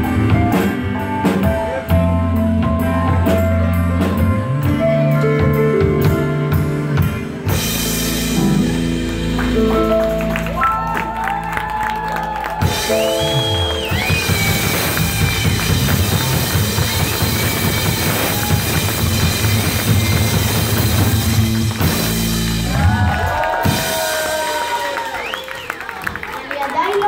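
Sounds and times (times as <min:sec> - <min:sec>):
drums keeping steady beat: 0:00.0 - 0:10.3, 0:12.3 - 0:25.0
rock band playing live: 0:00.0 - 0:25.4.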